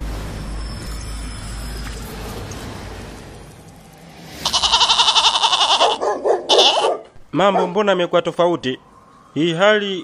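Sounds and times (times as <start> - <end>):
goat bleating: 4.4 - 6.9.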